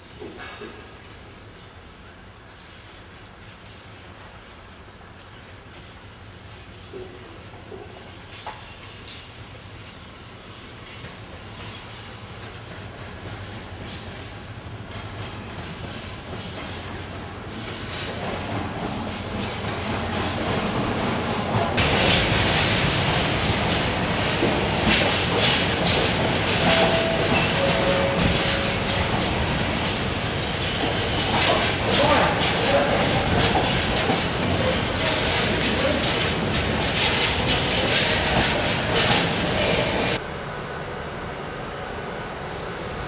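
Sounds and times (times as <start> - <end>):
diesel locomotive passing: 0.0 - 43.0
wheels clattering over rail joints: 21.6 - 40.2
train wheels squealing: 21.8 - 30.4.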